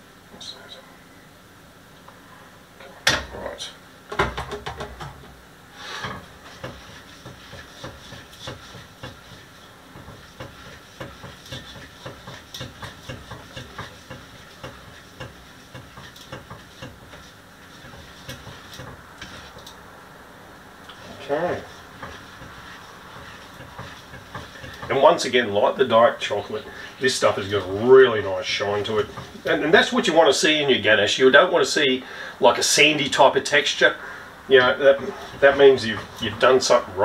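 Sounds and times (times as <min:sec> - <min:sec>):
utensil scraping metal bowl: 0:05.8 - 0:19.8, 0:20.9 - 0:30.0, 0:34.5 - 0:36.9.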